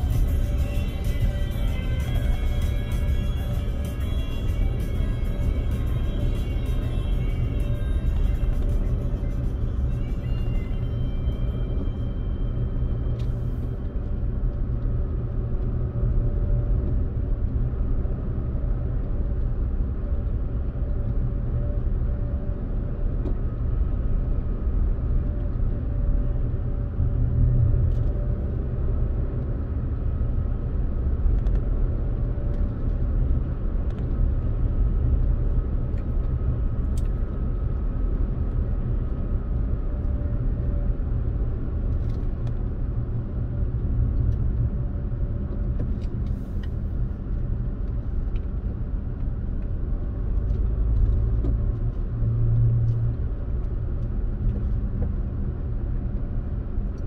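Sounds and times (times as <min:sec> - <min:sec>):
road and engine rumble in car: 0:00.0 - 0:57.0.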